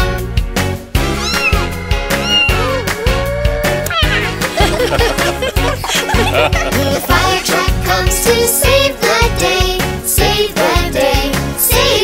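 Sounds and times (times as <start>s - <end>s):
instrumental children's song: 0.0s - 12.0s
cartoon cat meowing: 1.0s - 4.5s.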